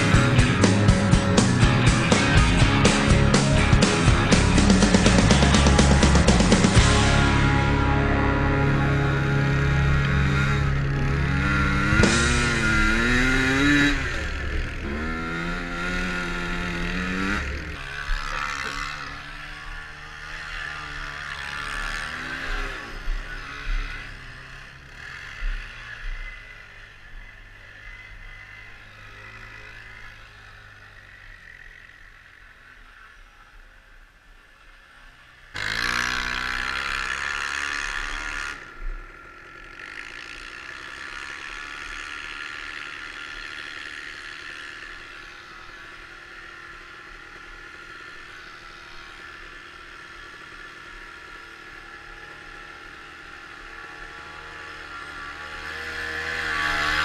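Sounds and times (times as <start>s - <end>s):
quad engine revving: 0.0s - 33.5s, 35.0s - 57.0s.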